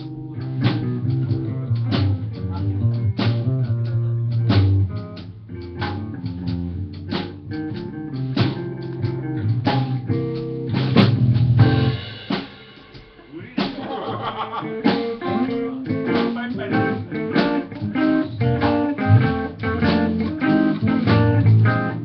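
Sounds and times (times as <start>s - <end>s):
electric bass: 0.0s - 12.3s, 15.1s - 22.0s
drum kit beat: 0.0s - 22.0s
electric guitars: 0.0s - 22.0s.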